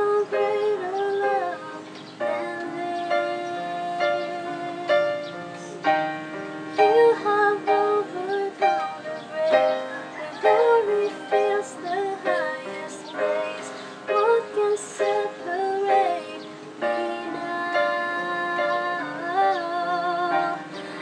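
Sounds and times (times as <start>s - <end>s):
woman singing: 0.0s - 6.0s, 6.7s - 21.0s
digital piano chords: 0.0s - 21.0s.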